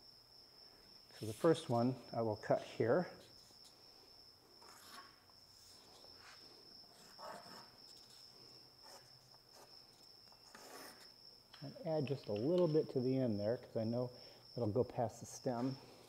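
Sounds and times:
crickets trilling: 0.0s - 16.0s
pencil scratching on plywood: 6.9s - 8.2s, 10.3s - 11.1s.

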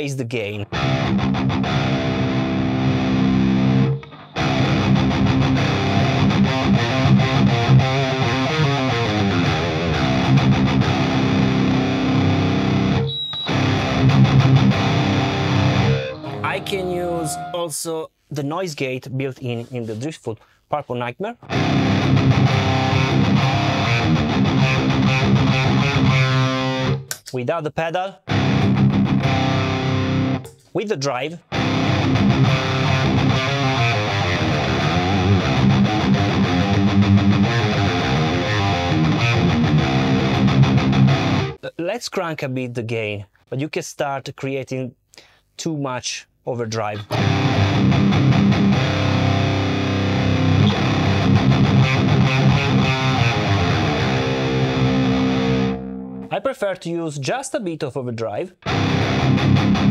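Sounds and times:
distorted electric guitar riff: 0.7s - 17.8s, 21.4s - 27.2s, 28.3s - 30.5s, 31.4s - 41.6s, 47.0s - 56.4s, 58.6s - 59.9s.

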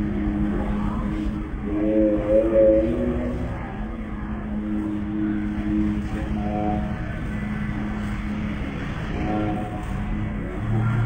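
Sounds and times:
crowd murmur: 0.0s - 11.0s
person chanting long notes: 0.0s - 11.0s.

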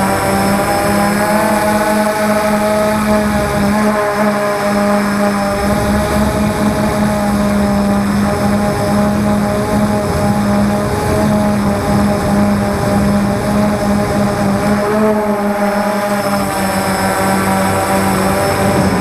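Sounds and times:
drone propellers humming: 0.0s - 19.0s.

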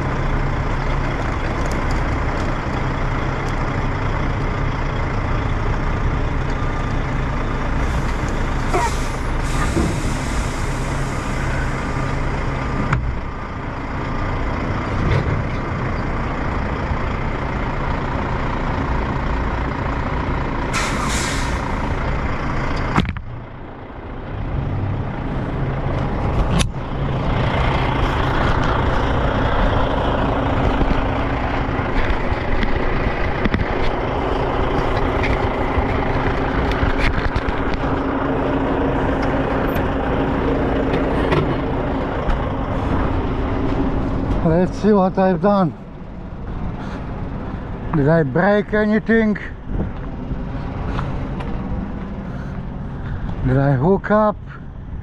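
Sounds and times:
truck diesel engine running: 0.0s - 55.0s
air hiss: 8.7s - 12.0s, 20.7s - 21.8s.

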